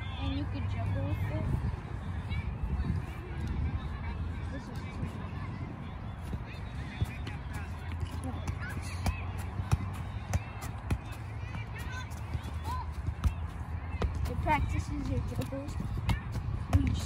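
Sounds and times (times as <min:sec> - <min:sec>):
soccer ball kick thuds: 0:06.3 - 0:17.0.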